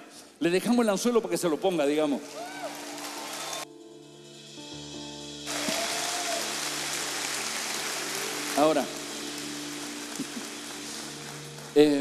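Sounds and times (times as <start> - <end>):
soft background music: 0.4 - 12.0
congregation applauding: 2.0 - 3.7, 5.5 - 12.0.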